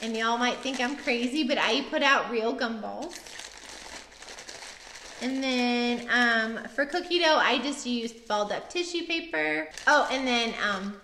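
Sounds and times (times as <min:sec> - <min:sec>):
soft crinkling: 0:00.0 - 0:01.8, 0:03.0 - 0:07.2, 0:09.7 - 0:11.0.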